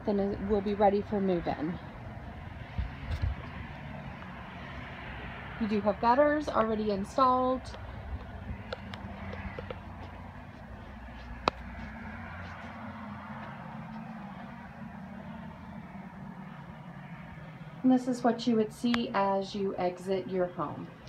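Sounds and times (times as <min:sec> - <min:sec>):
low rumble: 0:00.0 - 0:18.8.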